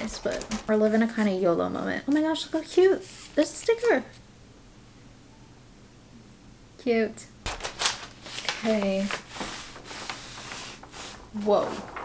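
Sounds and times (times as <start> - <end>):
plastic film rustling and crinkling: 0.0 - 1.4, 7.5 - 12.0.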